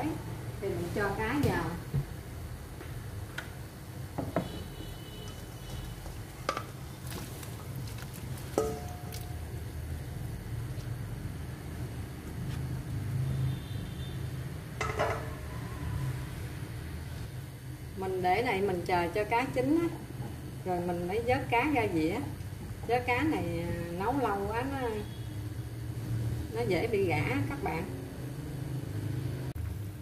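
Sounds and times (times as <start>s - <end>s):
boiling pot rumble: 0.0s - 30.0s
utensil knocking on metal pan: 14.8s - 15.4s.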